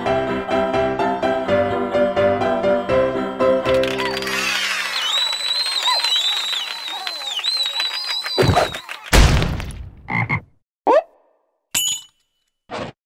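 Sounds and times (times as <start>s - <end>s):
wavering whistle-like tone: 4.4s - 8.8s.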